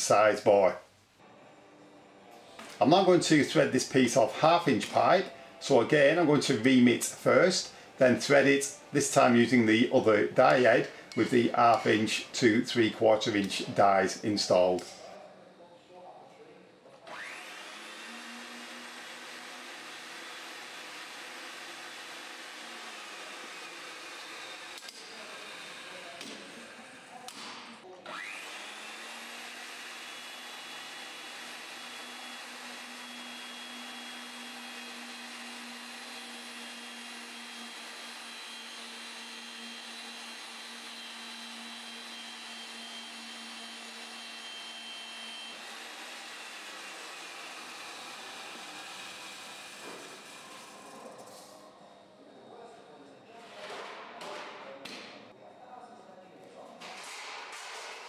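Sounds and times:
electric motor whining and humming: 17.1 - 27.2, 28.1 - 50.9.

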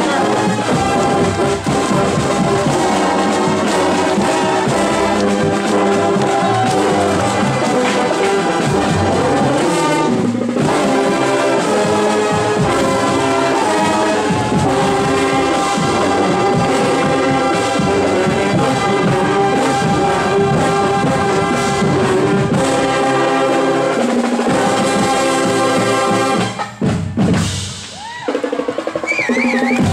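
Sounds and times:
brass chords: 0.0 - 27.6
marching drums: 0.0 - 29.9.

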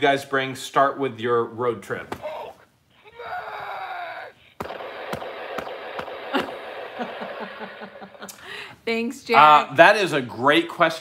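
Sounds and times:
toy roaring cry: 2.3 - 7.8
toy clattering crash noise: 4.6 - 7.5.

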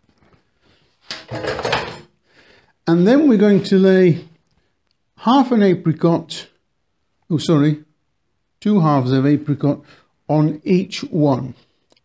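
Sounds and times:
kitchen utensils clattering: 1.2 - 2.1.

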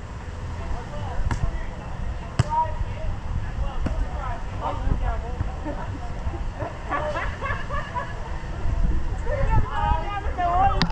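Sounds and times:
voices talking and calling out: 0.4 - 10.9.

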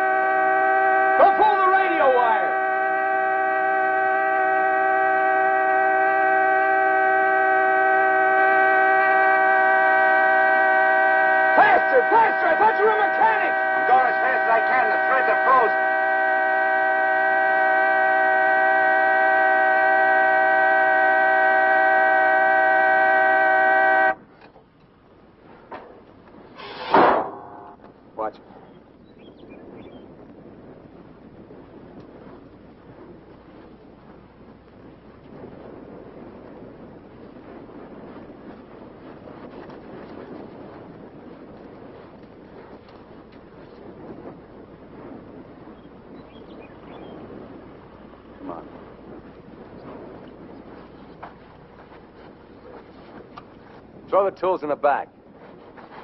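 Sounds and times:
sustained multi-pitch tone: 0.0 - 24.2
sharp knock: 26.8 - 27.4.

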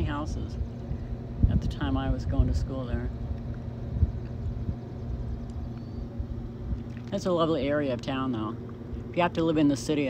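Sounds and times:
low uneven rumble: 0.0 - 10.0.

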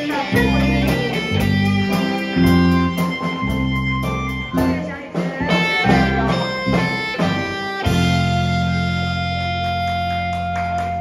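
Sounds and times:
drums and cymbals: 0.0 - 9.0
bass line: 0.0 - 11.0
keyboard chords: 0.0 - 11.0.

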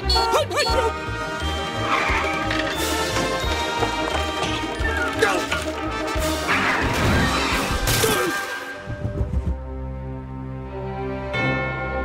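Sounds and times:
orchestral music: 0.0 - 12.0.

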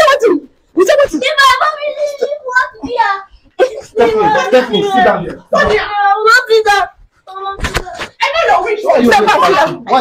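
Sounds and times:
people shouting in argument: 8.2 - 10.0.

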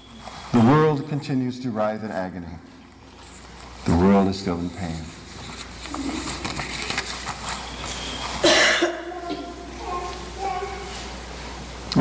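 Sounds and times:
man coughing: 8.4 - 9.6.

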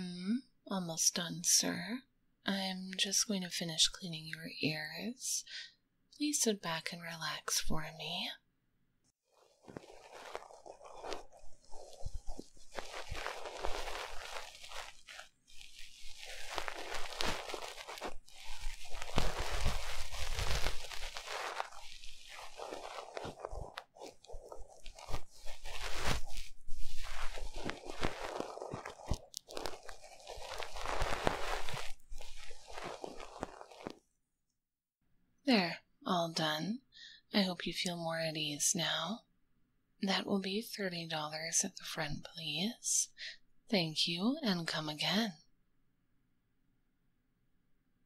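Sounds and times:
scratching and rubbing microphone: 9.2 - 34.1.

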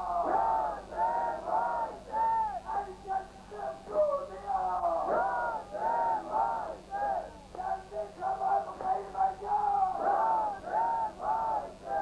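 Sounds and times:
man chanting a lament: 2.6 - 5.2, 7.7 - 10.6.

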